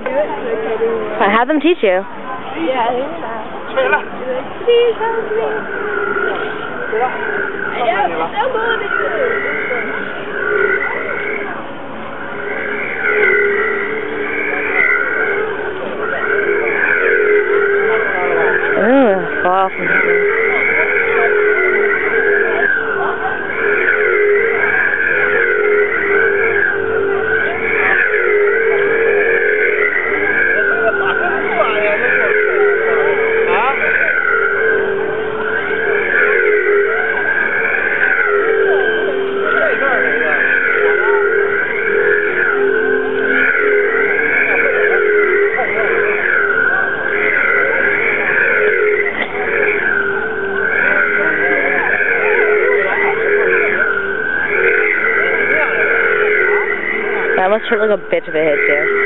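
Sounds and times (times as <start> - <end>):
pulsing low hum: 0.0 - 59.0.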